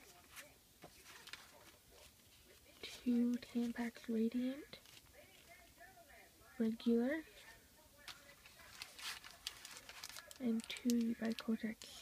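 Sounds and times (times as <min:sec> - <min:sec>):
plastic wrappers crinkling: 0:00.0 - 0:04.0, 0:04.8 - 0:05.7, 0:07.4 - 0:12.0.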